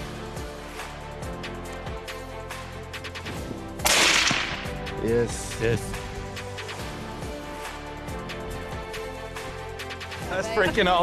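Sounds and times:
rifle shot: 3.8s - 4.7s.

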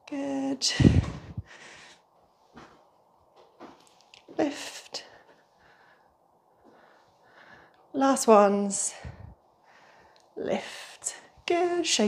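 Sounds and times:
faint breath or rustle: 0.9s - 2.7s, 5.1s - 7.8s.

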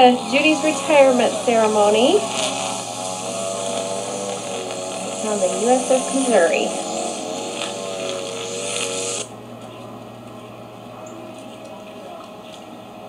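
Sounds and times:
low electrical hum: 0.0s - 13.0s
wavering pitched whine with hiss: 0.0s - 13.0s.

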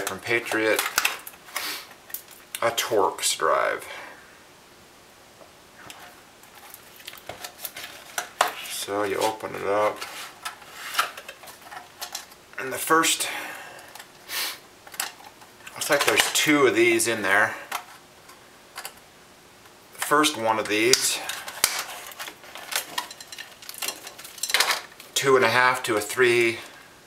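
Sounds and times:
plastic tray rustling: 0.0s - 1.7s, 5.9s - 12.3s, 14.9s - 16.6s, 20.0s - 25.2s
plastic packaging crinkling: 0.0s - 2.6s, 6.0s - 12.4s, 20.0s - 25.2s.

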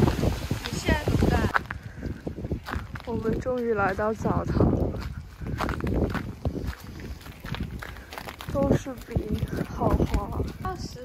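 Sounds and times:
footsteps on icy snow: 0.0s - 11.0s.

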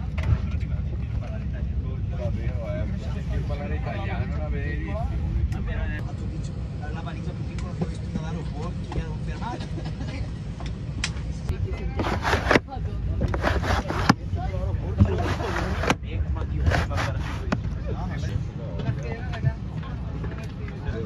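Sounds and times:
airplane cabin rumble: 0.0s - 21.0s
passengers talking: 0.0s - 21.0s.

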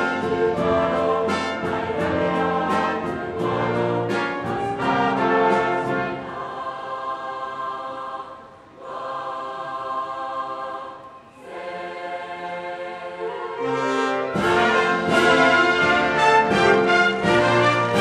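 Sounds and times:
wind band playing chords: 0.0s - 7.0s, 13.1s - 18.0s.

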